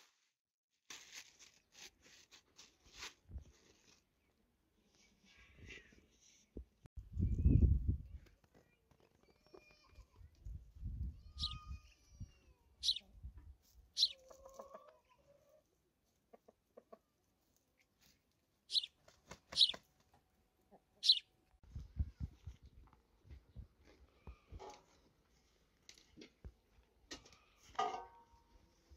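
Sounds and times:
chickens chirping: 11.3s - 11.8s, 12.8s - 13.2s, 13.9s - 15.7s, 18.7s - 19.8s, 20.6s - 21.4s.

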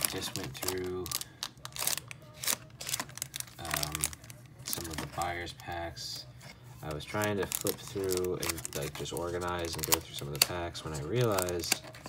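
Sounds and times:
foil packs crinkling: 0.0s - 6.2s, 6.8s - 12.0s.

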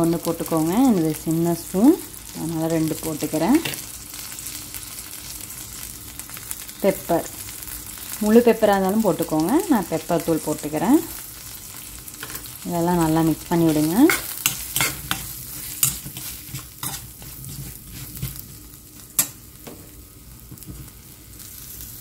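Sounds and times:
food sizzling in oil: 0.0s - 22.0s
spatula scraping and clicking on pan: 12.2s - 12.5s, 13.6s - 19.8s.

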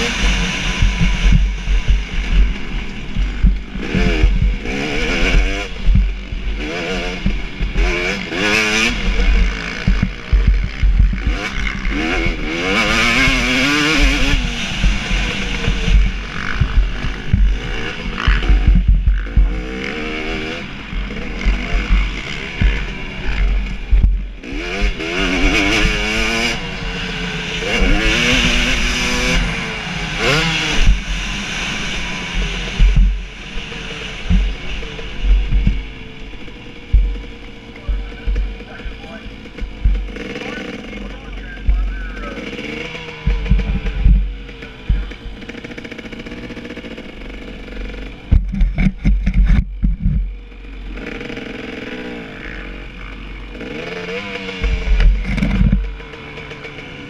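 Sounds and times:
low buffeting rumble: 0.0s - 8.3s, 9.0s - 12.7s, 14.0s - 25.4s, 32.0s - 50.8s
motocross engine revving: 0.0s - 57.0s.

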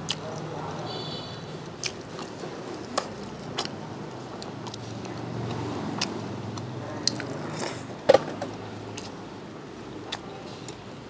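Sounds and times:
person chewing crisp food: 0.0s - 0.5s, 1.6s - 7.9s, 8.8s - 9.2s.

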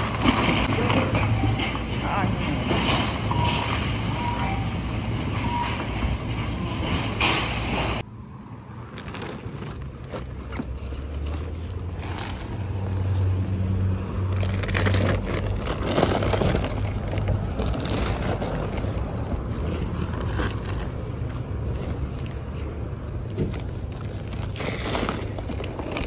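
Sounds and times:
vehicle engine hum: 0.0s - 26.0s
short electronic beeps: 3.3s - 4.8s
shopping bags rustling: 8.8s - 26.0s.

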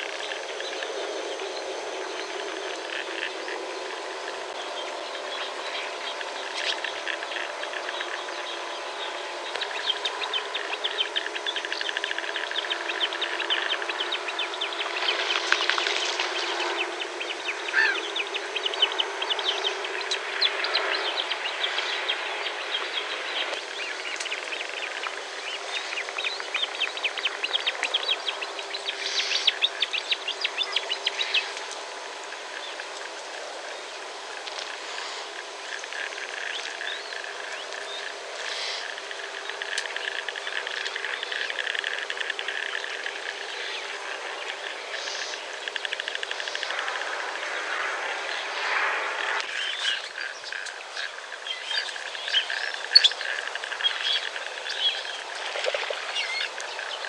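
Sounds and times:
background hiss: 0.0s - 57.0s
birds chattering trills: 0.0s - 57.0s.

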